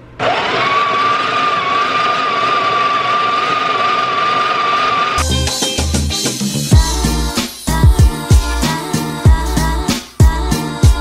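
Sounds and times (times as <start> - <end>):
espresso machine motor whine: 0.2 - 5.2
background music with a beat: 5.2 - 11.0.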